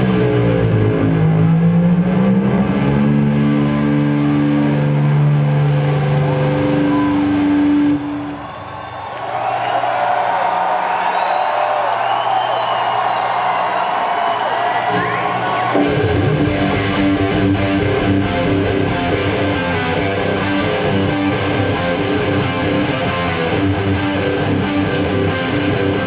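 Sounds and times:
distorted electric guitar solo: 0.0 - 8.4, 14.8 - 26.0.

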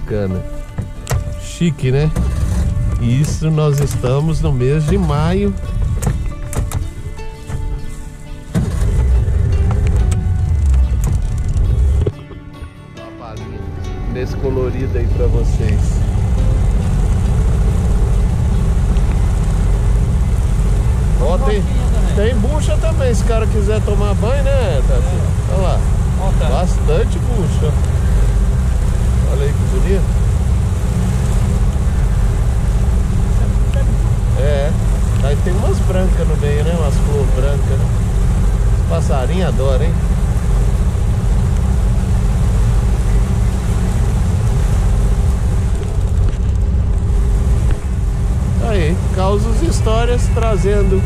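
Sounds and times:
outboard motor running: 0.0 - 12.5, 14.1 - 51.0.

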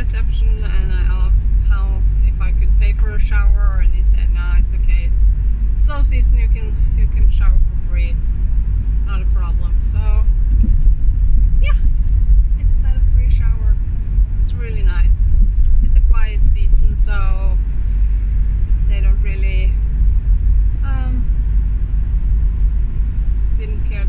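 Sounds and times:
woman talking: 0.0 - 8.4, 9.1 - 10.3, 11.6 - 11.8, 12.6 - 13.8, 14.5 - 17.6, 18.7 - 19.8, 20.8 - 21.3, 23.6 - 24.0
van engine rumble: 0.0 - 24.0.

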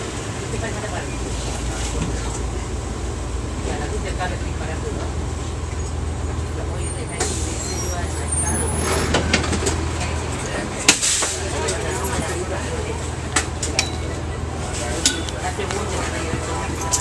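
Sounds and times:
bus diesel engine drone: 0.0 - 17.0
bus rattling: 0.0 - 17.0.

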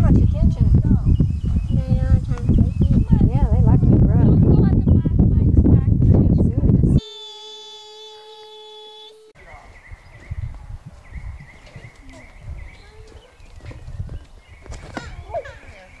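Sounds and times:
rumbling on microphone: 0.0 - 7.0
steady pitched tone: 6.9 - 9.6.

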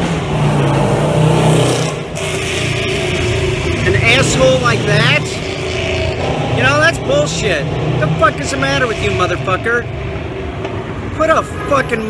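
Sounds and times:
rushing exhaust noise: 0.0 - 12.0
vehicle engine drone: 0.0 - 12.0.

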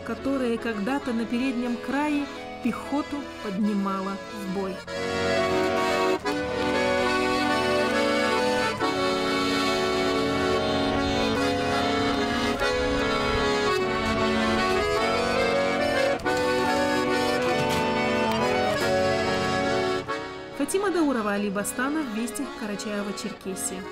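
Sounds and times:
button accordion melody: 0.0 - 23.9.

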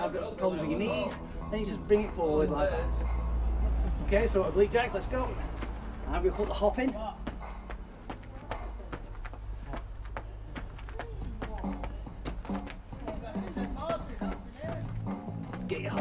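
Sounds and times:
feet hopping on paving: 5.5 - 16.0.

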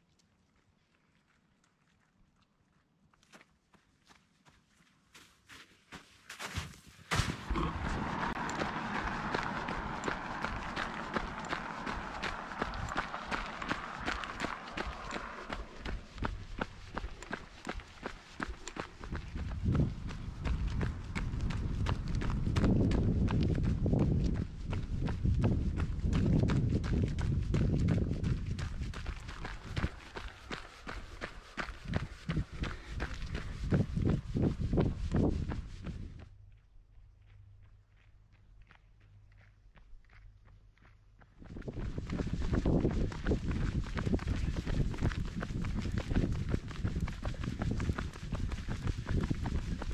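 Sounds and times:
running footsteps on asphalt: 0.1 - 49.9
wind rumble on microphone: 7.2 - 36.4, 41.2 - 49.9.

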